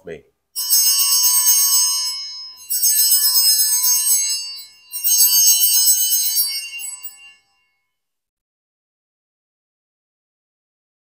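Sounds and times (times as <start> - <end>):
small bells jingling: 0.6 - 7.9.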